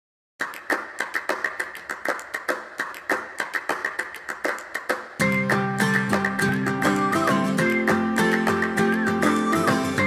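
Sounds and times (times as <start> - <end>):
sharp clap-like percussion hits: 0.4 - 10.0.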